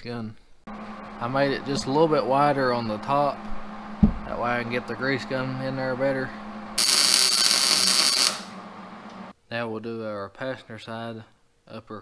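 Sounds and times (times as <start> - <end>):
welder arc crackling: 0.7 - 9.3.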